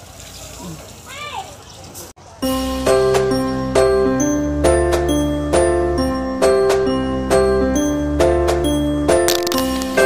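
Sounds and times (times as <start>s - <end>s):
wind: 0.0s - 2.4s.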